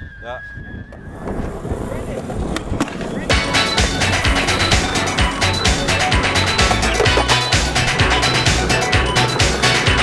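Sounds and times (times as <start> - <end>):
skateboard wheels rolling on concrete: 0.9 - 10.0
hip-hop music with heavy beat: 3.3 - 10.0.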